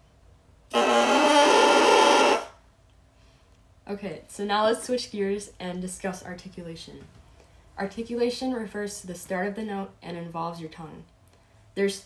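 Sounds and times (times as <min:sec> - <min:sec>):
buzzy bassoon reed crow: 0:00.7 - 0:02.6.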